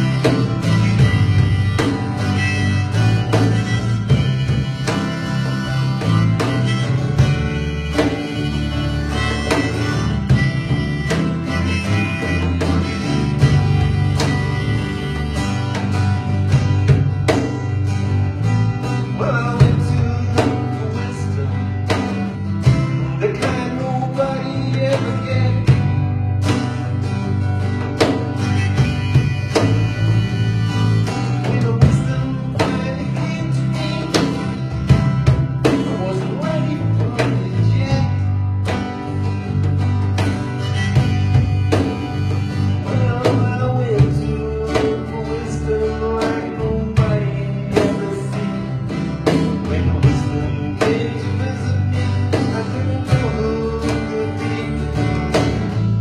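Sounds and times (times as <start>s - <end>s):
acoustic guitar strumming: 0.0s - 56.0s
bass guitar: 0.0s - 56.0s
cajon: 0.0s - 56.0s.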